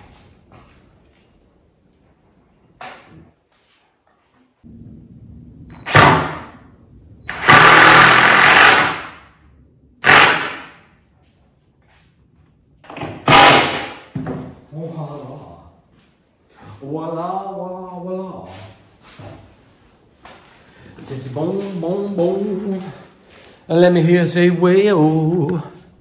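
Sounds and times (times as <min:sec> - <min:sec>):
cordless drill driving screws: 0:07.3 - 0:09.1, 0:10.0 - 0:10.6.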